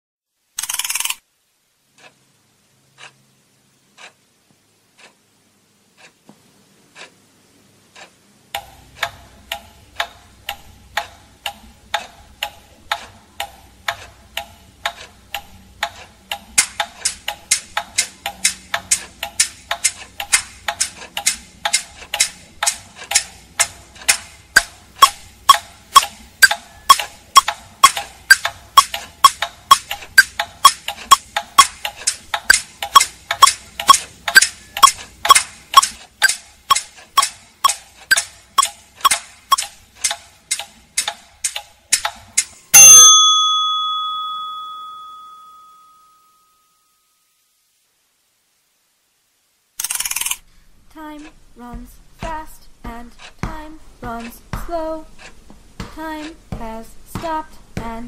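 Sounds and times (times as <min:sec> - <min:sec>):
clocks and metronomes ticking: 0:01.8 - 0:06.2, 0:06.9 - 0:46.0
soft tick: 0:04.0 - 0:05.2, 0:07.9 - 0:24.7
short ringing ping: 0:42.8 - 0:47.0.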